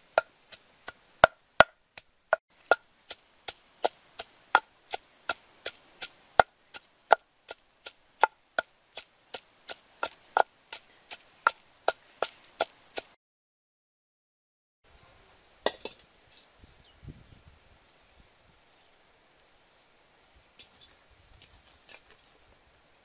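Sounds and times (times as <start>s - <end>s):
wooden pestle pounding in mortar: 0.9s - 2.1s.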